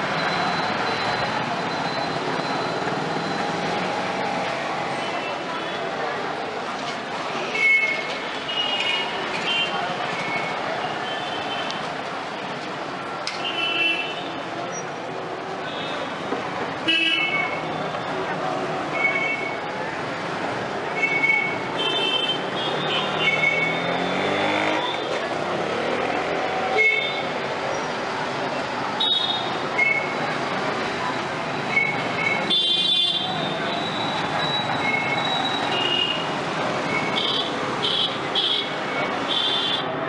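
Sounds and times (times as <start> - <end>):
passers-by talking: 0.0 - 13.6, 14.2 - 40.0
traffic noise: 0.0 - 40.0.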